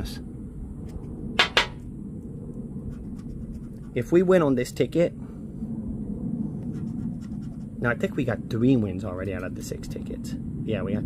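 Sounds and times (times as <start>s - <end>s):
low background rumble: 0.0s - 11.0s
scratching lottery ticket: 2.9s - 4.2s.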